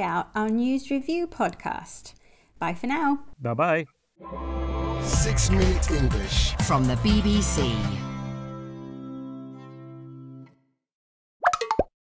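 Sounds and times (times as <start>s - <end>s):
held music chord: 4.2s - 10.4s.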